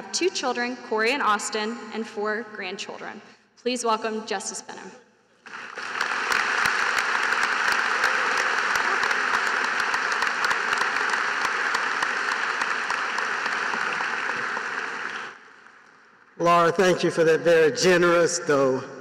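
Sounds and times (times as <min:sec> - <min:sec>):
large crowd applauding: 0:05.4 - 0:16.7.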